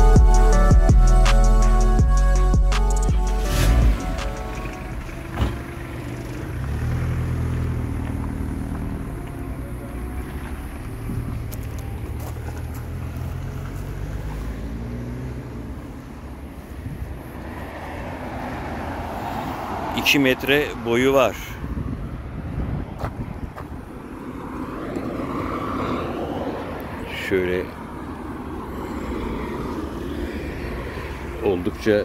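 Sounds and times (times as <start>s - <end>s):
vehicle engine rumbling: 0.0s - 32.0s.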